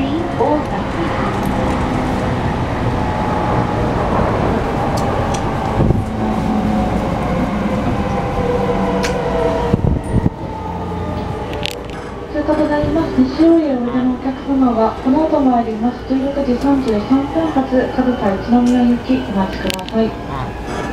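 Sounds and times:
train rumble: 0.0s - 20.9s
train traction motor whine: 0.0s - 20.9s.

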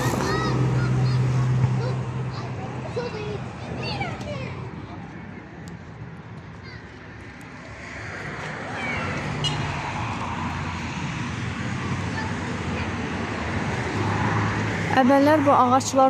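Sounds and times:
cars passing on street: 0.0s - 16.0s.

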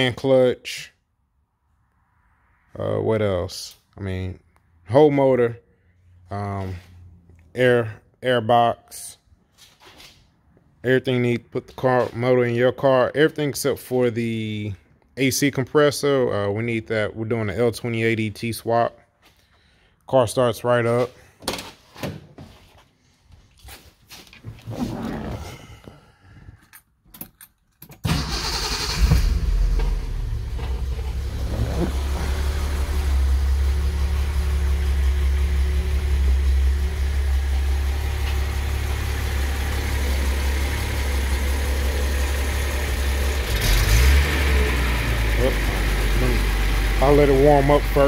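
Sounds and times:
car engine starting and idling: 28.0s - 48.0s.

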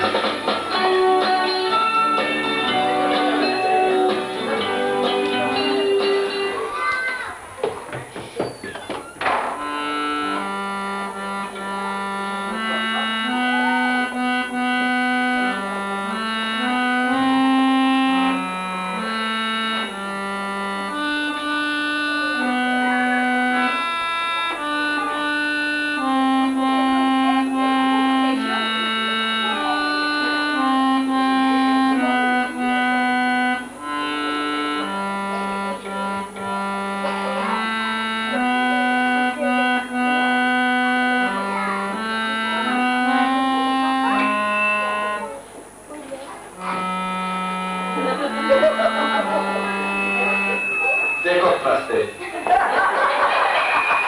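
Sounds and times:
electronic keyboard melody: 0.0s - 6.9s, 9.2s - 54.0s.

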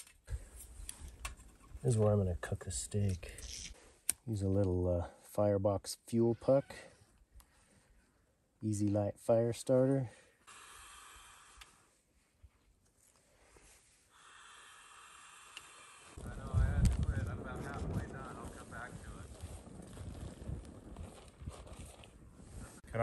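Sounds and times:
fire crackling: 15.5s - 23.0s
low rumble of flame: 16.2s - 23.0s.

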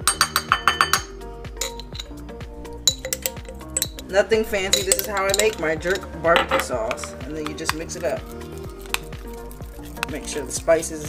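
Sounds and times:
knife clinking on a glass jar: 0.0s - 2.2s, 2.8s - 8.2s
background music: 0.0s - 11.0s.

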